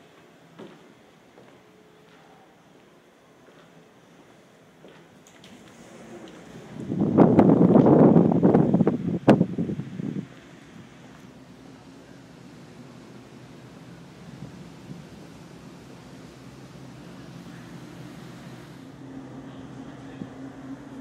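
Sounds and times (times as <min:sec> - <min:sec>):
wind buffeting microphone: 0:05.7 - 0:11.3.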